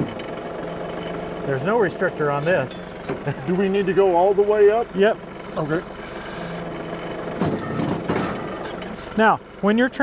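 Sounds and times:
diesel tractor engine under load: 0.0s - 10.0s.

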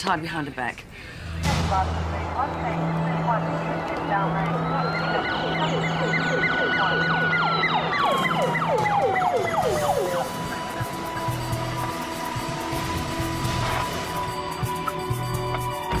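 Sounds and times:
siren sliding down in pitch: 2.5s - 13.8s.

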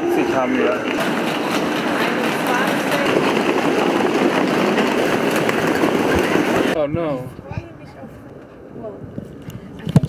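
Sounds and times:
loud train noise: 0.0s - 6.8s.

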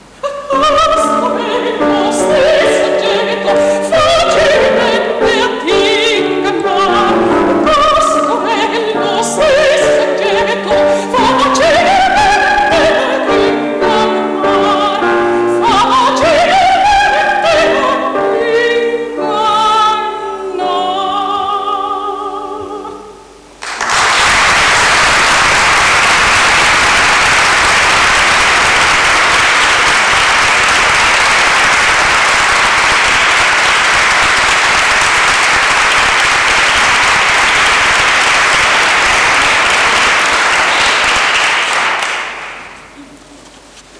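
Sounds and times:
audience applauding: 23.6s - 42.9s.

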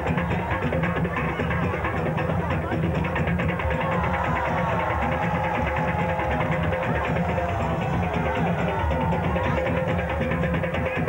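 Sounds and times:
drum ensemble dance rhythm: 0.0s - 11.0s.

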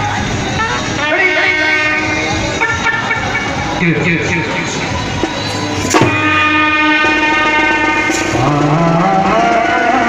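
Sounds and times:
brass band playing: 0.4s - 5.0s, 5.7s - 10.0s.

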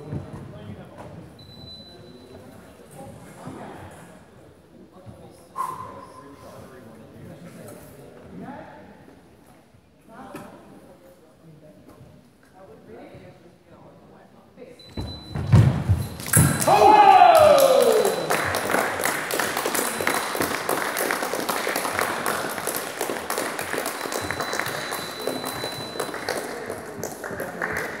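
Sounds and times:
thud: 15.0s - 16.7s
spectators applauding and cheering: 16.2s - 28.0s
fencer shouting: 16.4s - 18.3s.

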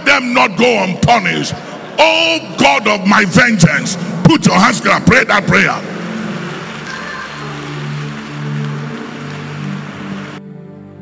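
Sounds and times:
congregation praying aloud: 0.0s - 10.4s
low organ chords: 0.0s - 11.0s.

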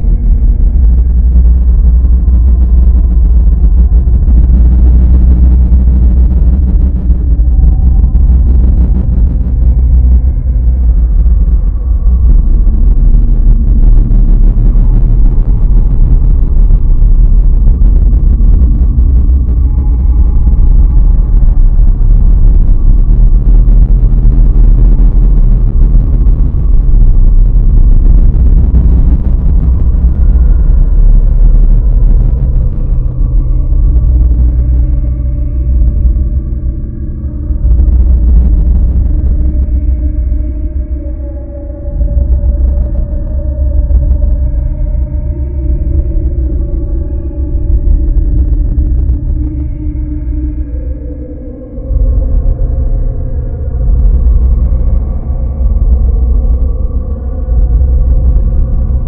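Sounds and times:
low rumbling drone: 0.0s - 59.0s.

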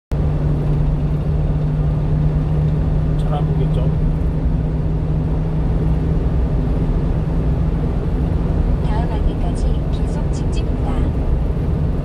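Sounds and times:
truck engine and road drone: 0.1s - 12.0s.

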